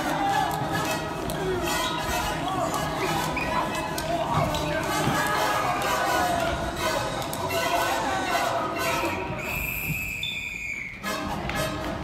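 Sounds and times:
high whistle tone: 0:09.0 - 0:11.1.

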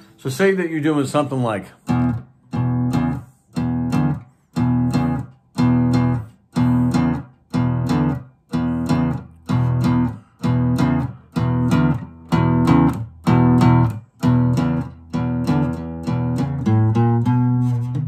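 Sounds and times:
guitar strumming chords: 0:01.8 - 0:18.0.

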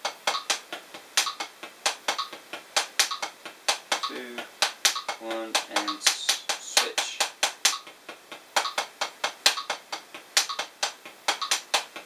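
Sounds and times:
drumsticks tapping practice pad: 0:00.0 - 0:12.0.

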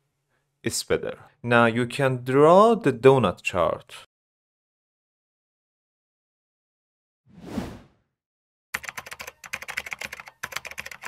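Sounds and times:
whoosh sound effect: 0:07.3 - 0:07.9
keyboard typing clicks: 0:08.8 - 0:11.0.

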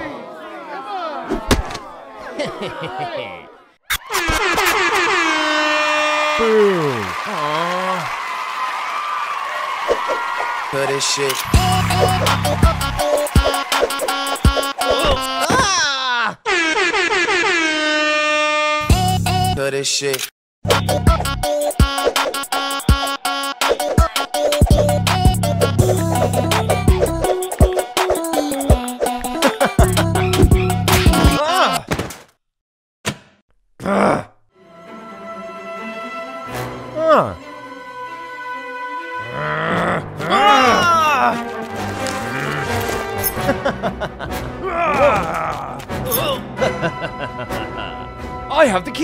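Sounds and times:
rough monster roar: 0:39.2 - 0:41.4.

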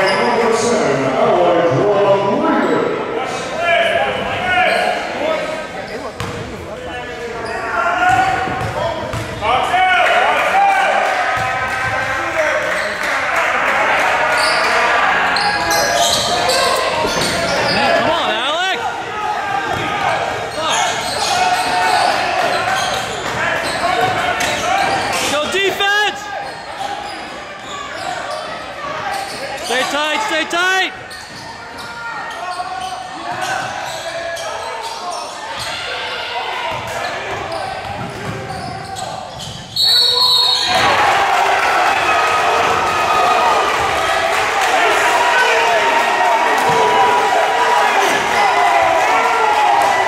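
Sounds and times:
sneakers squeaking on floor: 0:00.0 - 0:00.5, 0:04.1 - 0:05.1, 0:05.8 - 0:06.6, 0:14.3 - 0:18.4, 0:19.7 - 0:25.3, 0:26.4 - 0:29.9, 0:30.9 - 0:36.0, 0:36.7 - 0:40.8.

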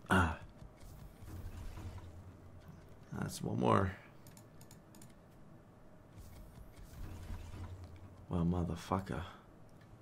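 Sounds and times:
computer keyboard clicks: 0:04.2 - 0:05.2.

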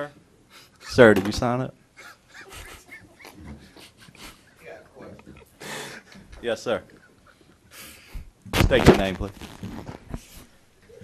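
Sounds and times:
faint laughter: 0:02.0 - 0:06.2.

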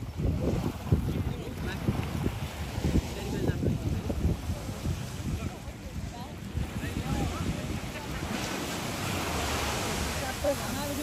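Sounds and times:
surf washing: 0:00.0 - 0:11.0
wind buffeting microphone: 0:00.0 - 0:11.0.

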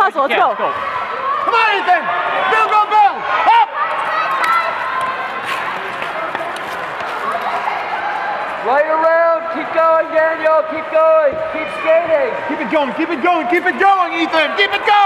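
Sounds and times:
ice rink background noise: 0:00.0 - 0:15.0.

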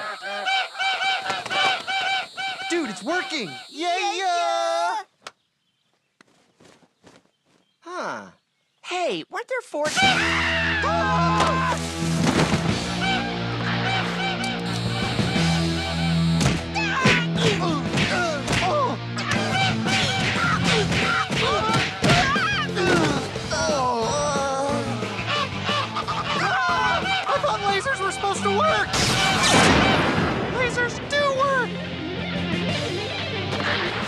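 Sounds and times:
geese honking: 0:00.0 - 0:04.4, 0:12.7 - 0:17.6, 0:19.2 - 0:22.8, 0:24.9 - 0:30.2
background music: 0:09.9 - 0:34.0.

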